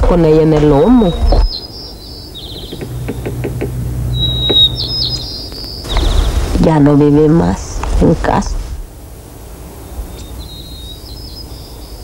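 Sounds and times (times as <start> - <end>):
low hum: 0.0 - 10.4
small birds chirping: 0.1 - 7.4, 9.7 - 12.0.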